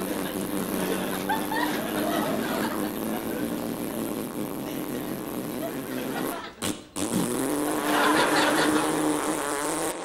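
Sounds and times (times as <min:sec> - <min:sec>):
man blowing buzzing raspberry: 0:00.0 - 0:10.0.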